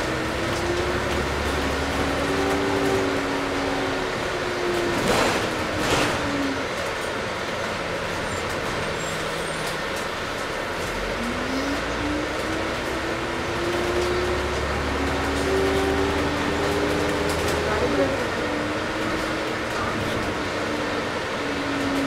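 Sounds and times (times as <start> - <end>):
bus engine and drivetrain whine: 0.0 - 22.0.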